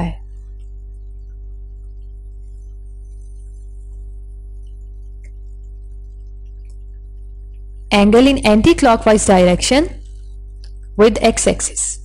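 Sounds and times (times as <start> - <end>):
electrical hum: 0.0 - 12.0.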